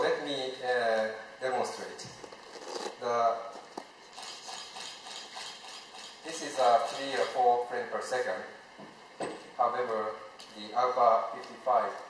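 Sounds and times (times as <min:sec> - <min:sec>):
camera shutter burst clicks: 0:04.2 - 0:06.2.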